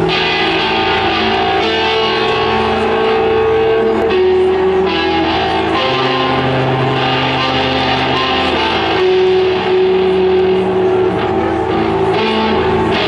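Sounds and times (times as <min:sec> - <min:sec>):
electric guitar held notes: 0:00.0 - 0:13.0.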